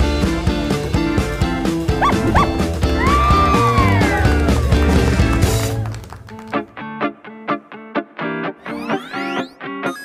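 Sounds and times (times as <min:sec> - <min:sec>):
upbeat cartoon music: 0:01.8 - 0:05.8
cartoon dog yelping and crying: 0:02.0 - 0:02.6.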